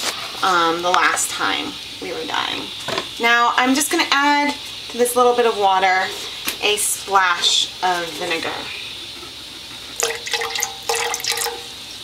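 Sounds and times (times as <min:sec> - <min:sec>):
liquid pouring into water: 0:10.0 - 0:11.7.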